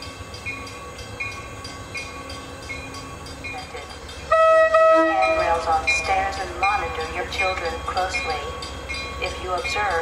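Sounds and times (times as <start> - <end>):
train bell ringing: 0.0 - 10.0
train engine rumbling: 0.0 - 10.0.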